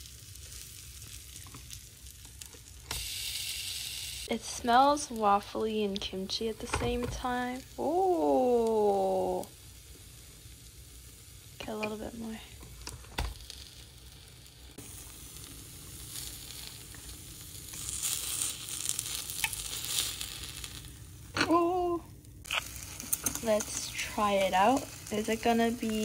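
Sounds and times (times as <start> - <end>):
pancake sizzling: 0.0 - 26.0.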